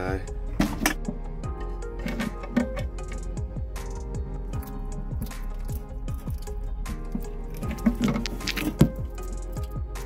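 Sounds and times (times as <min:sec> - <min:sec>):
music with steady beat: 0:00.0 - 0:10.0
wet squishing chewing: 0:04.5 - 0:09.8.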